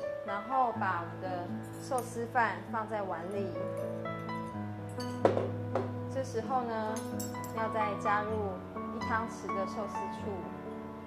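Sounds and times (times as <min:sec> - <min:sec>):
kitchenware clink: 0:04.9 - 0:05.9, 0:07.0 - 0:07.6
faint knock: 0:05.2 - 0:06.0.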